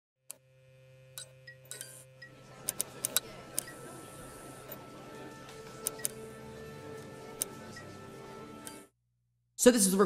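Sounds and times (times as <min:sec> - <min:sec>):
faint music: 0:00.8 - 0:08.9.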